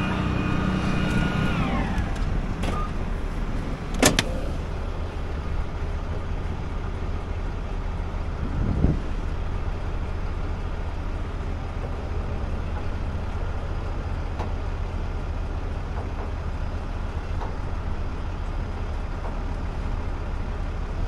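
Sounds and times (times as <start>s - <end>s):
truck engine droning: 0.0s - 21.0s.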